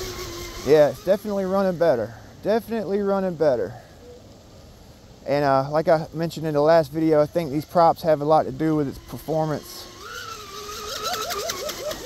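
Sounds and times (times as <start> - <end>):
electric motor whining: 0.0 - 3.9, 5.2 - 12.0.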